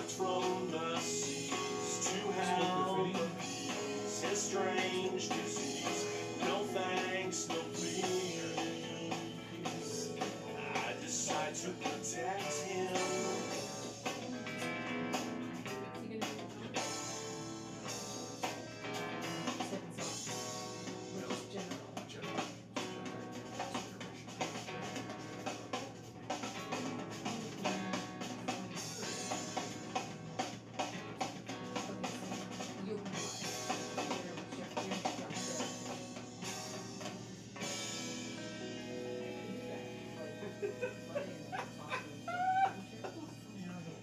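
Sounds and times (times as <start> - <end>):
band music with drums and guitar: 0.0 - 43.1.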